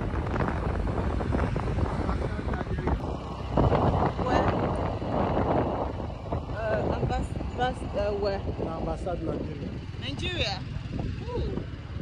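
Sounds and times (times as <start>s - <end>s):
car road and engine noise: 0.0s - 12.0s
wind rushing over microphone: 0.0s - 12.0s.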